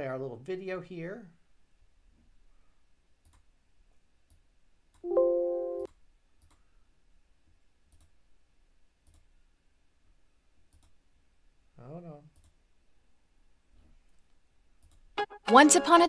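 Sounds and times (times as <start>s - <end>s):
computer mouse clicks: 3.2s - 3.5s, 5.9s - 6.7s, 7.9s - 8.2s, 9.0s - 9.3s, 10.7s - 11.0s, 12.3s - 12.6s, 14.8s - 15.1s.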